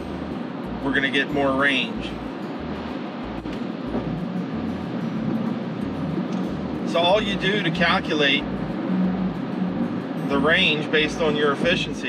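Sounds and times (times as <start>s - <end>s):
tyre and wind noise in car cabin: 0.0s - 12.0s.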